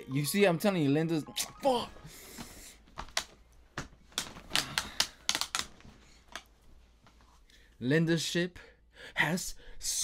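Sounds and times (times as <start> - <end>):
sharp clicks and taps: 3.0 - 5.7.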